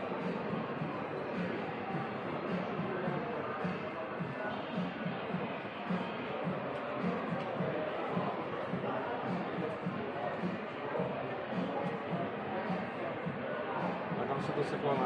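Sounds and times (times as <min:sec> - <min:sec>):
hubbub of many people talking: 0:00.0 - 0:15.0.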